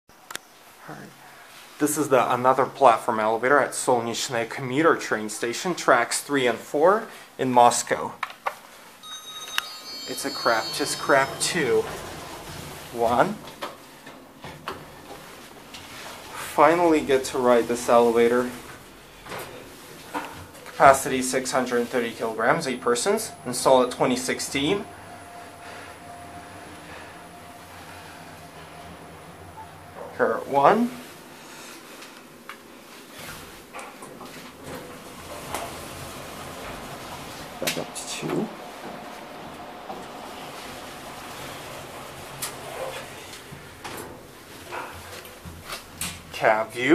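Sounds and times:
elevator electronic chime: 0:09.0 - 0:13.6, 0:20.8 - 0:31.4
elevator doors sliding open: 0:09.0 - 0:46.4
low running rumble: 0:14.8 - 0:31.7.

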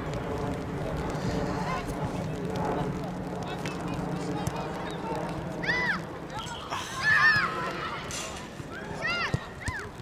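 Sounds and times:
children calling out: 0:05.6 - 0:10.0.

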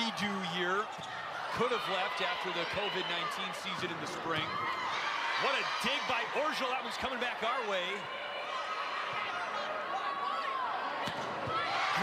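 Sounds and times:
crowd noise: 0:00.0 - 0:12.0
sneakers squeaking on court: 0:00.8 - 0:01.4.

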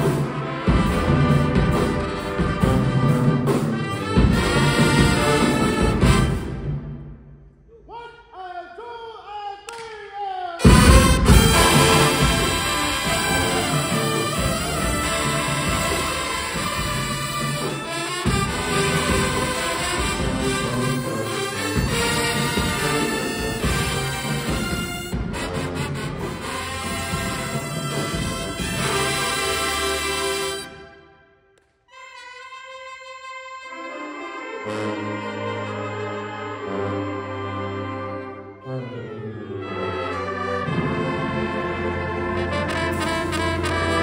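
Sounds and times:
marching band brass playing: 0:00.0 - 0:07.2, 0:10.6 - 0:31.1, 0:31.9 - 0:44.0
percussion: 0:00.0 - 0:07.4, 0:10.6 - 0:30.8, 0:40.6 - 0:44.0
lower horns: 0:10.6 - 0:31.0, 0:31.9 - 0:44.0.

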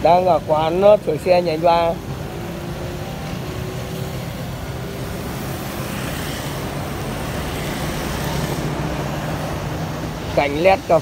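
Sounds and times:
traffic engine hum: 0:00.0 - 0:11.0.

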